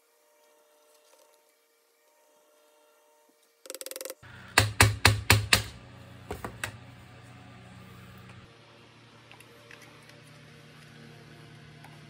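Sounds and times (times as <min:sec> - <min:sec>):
low hum: 0:05.7 - 0:12.0.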